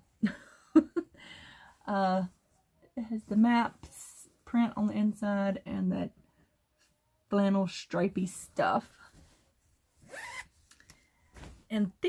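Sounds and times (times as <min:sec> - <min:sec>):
zipper on fabric bag: 0:10.0 - 0:10.5.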